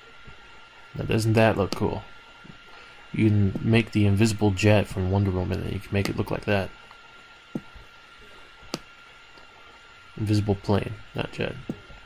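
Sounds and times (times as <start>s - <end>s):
faint whine and hiss: 0.0s - 12.0s.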